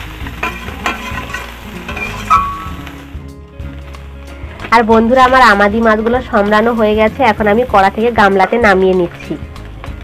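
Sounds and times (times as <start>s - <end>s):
fish sizzling in oil: 0.0s - 10.0s.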